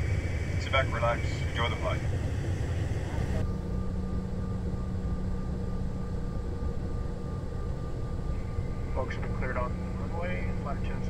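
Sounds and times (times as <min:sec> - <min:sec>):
jet engines rumbling in cabin: 0:00.0 - 0:11.0.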